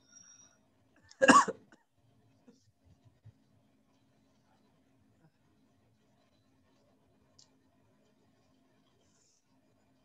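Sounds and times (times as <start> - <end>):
person coughing: 1.2 - 1.7.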